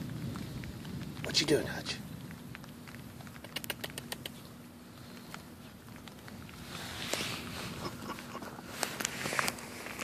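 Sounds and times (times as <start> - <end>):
puppy claws clicking on concrete: 2.3 - 10.0.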